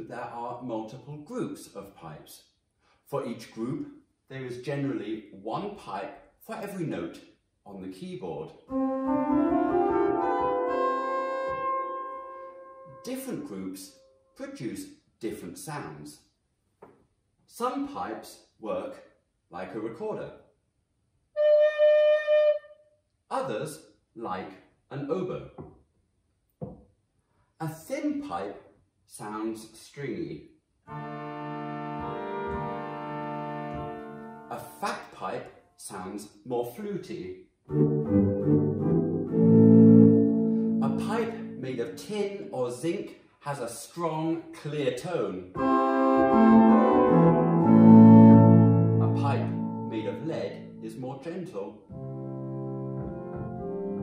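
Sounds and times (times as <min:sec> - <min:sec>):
pipe organ chord: 0:08.7 - 0:13.1, 0:30.9 - 0:34.5, 0:37.7 - 0:41.7, 0:45.6 - 0:51.0, 0:51.9 - 0:54.0.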